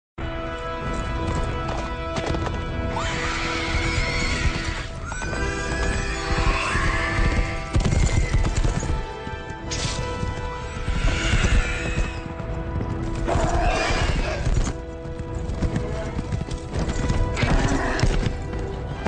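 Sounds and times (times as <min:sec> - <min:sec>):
horse hooves galloping: 0:00.2 - 0:19.0
orchestral film music: 0:00.2 - 0:19.0
horses whinnying: 0:02.8 - 0:09.1, 0:09.7 - 0:14.8, 0:15.6 - 0:18.7.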